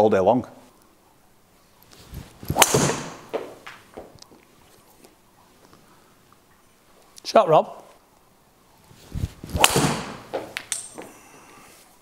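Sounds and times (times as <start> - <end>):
golf club swish: 1.9 - 4.8, 8.9 - 10.7
golf ball impact crack: 2.3 - 4.4, 9.4 - 11.1.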